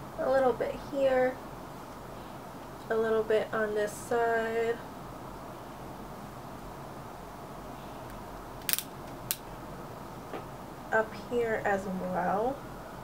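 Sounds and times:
room hiss: 0:00.0 - 0:13.0.

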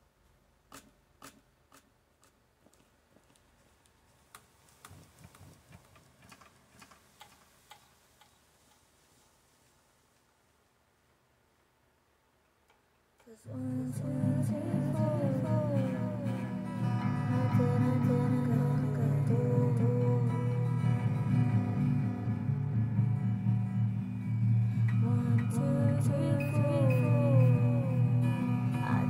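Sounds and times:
person singing wordless melody: 0:13.2 - 0:21.6, 0:24.9 - 0:29.0
acoustic guitar strumming chords: 0:13.5 - 0:29.0.

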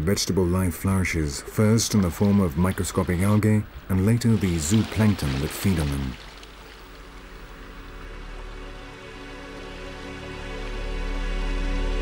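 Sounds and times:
soft music of sustained tones: 0:05.6 - 0:12.0.

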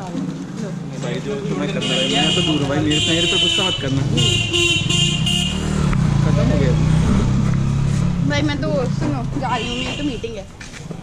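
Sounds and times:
scooter horn beeping: 0:01.8 - 0:05.8, 0:09.4 - 0:10.4.

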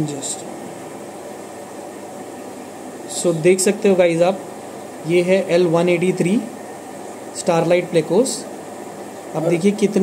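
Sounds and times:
background hiss and hum: 0:00.0 - 0:10.0.

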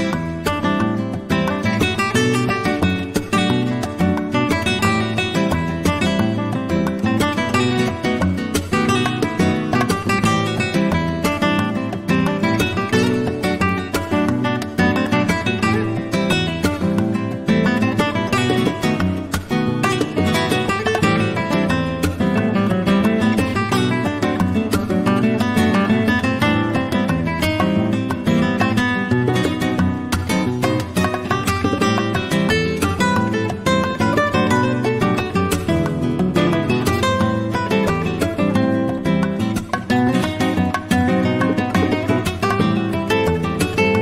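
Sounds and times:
flamenco guitars playing: 0:00.0 - 0:44.0.

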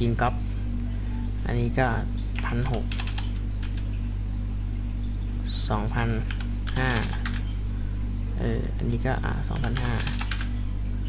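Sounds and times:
low hum: 0:00.0 - 0:11.0
keyboard keys clicking: 0:02.4 - 0:03.9, 0:06.3 - 0:07.4, 0:09.5 - 0:10.5.

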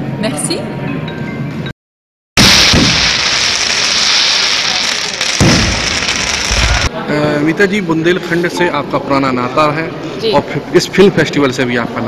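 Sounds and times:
firework bangs: 0:02.4 - 0:06.9
fireworks crackling hiss: 0:02.4 - 0:06.9.

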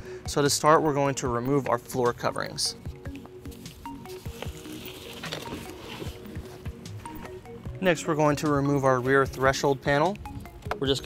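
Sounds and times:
background music: 0:00.0 - 0:11.0
carpet rustling and scraping: 0:03.5 - 0:07.4.

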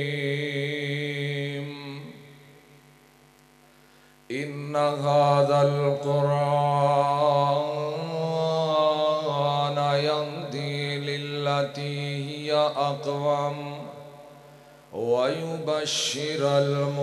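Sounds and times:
man chanting through microphone: 0:00.0 - 0:02.8, 0:04.3 - 0:17.0.

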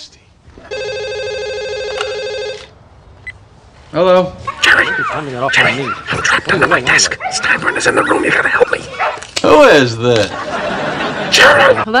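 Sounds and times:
desk telephone ringing: 0:00.7 - 0:02.7.

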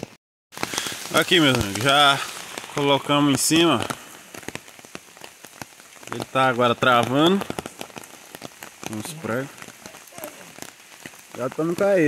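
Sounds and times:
raindrops tapping surfaces: 0:00.0 - 0:12.0
steady rain falling: 0:00.0 - 0:12.0.

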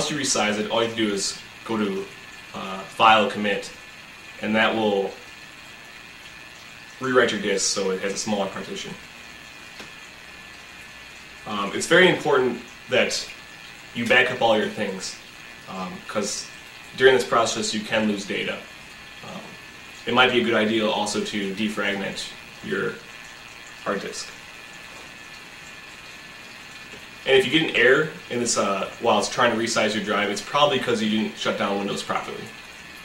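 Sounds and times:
low recording hiss: 0:00.0 - 0:33.0.

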